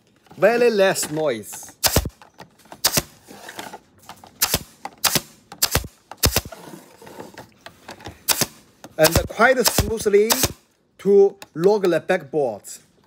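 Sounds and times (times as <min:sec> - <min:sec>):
pneumatic point driver firing: 0:01.8 - 0:02.2, 0:02.8 - 0:03.2, 0:04.4 - 0:06.6, 0:08.2 - 0:10.6.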